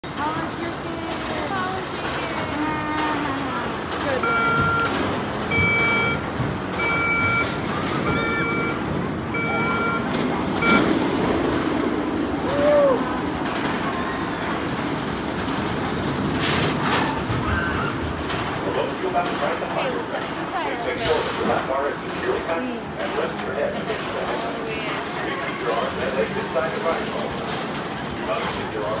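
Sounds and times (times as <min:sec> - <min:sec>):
roller coaster train rumbling: 0:00.0 - 0:29.0
electronic warning beeps: 0:04.1 - 0:11.0.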